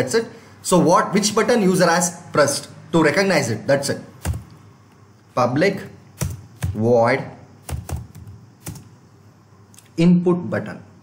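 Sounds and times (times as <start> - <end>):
computer keyboard keystrokes: 6.2 - 6.8, 7.7 - 8.9.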